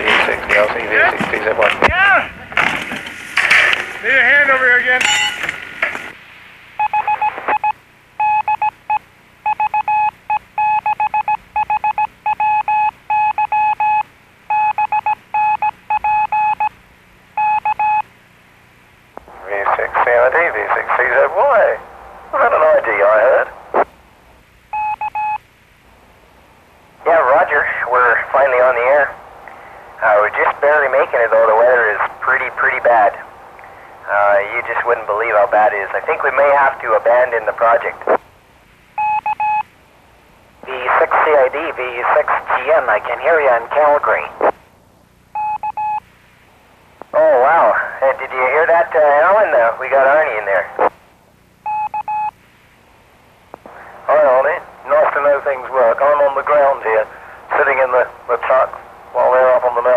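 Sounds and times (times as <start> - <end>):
voice over radio: 0.0 - 2.3, 19.2 - 23.9, 27.0 - 38.2, 40.6 - 44.5, 47.1 - 51.0, 53.6 - 59.9
morse code radio beeps: 5.0 - 5.5, 6.8 - 16.8, 17.4 - 18.1, 24.7 - 25.4, 39.0 - 39.7, 45.3 - 46.0, 51.6 - 52.4.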